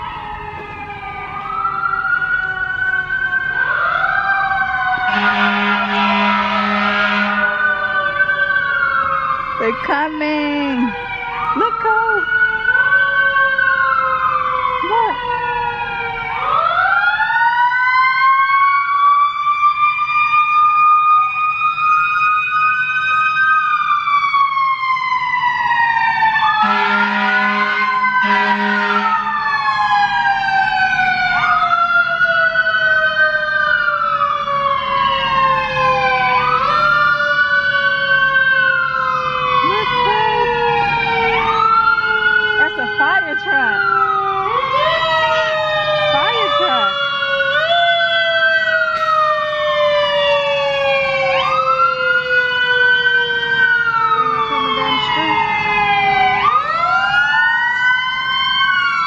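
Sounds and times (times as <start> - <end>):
sirens wailing: 0.0 - 59.0
short horn blasts: 5.1 - 7.5, 26.6 - 29.2.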